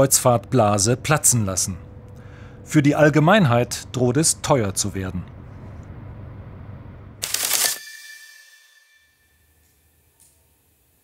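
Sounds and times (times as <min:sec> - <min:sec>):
low ambient rumble: 0:00.0 - 0:07.2.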